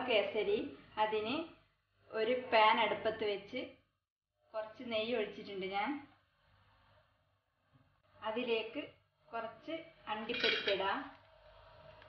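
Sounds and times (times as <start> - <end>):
nuts clattering in metal pan: 10.3 - 10.8.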